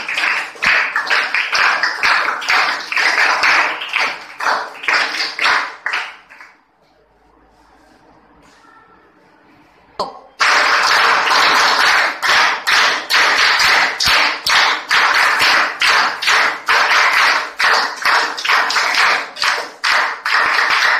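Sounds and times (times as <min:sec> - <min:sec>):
group clapping: 0:00.0 - 0:06.9, 0:10.2 - 0:20.9.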